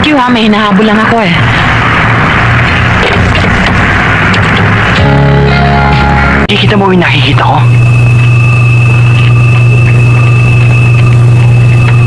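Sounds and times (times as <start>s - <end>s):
loud low hum: 0.0s - 12.0s
high-pitched tone: 4.9s - 12.0s.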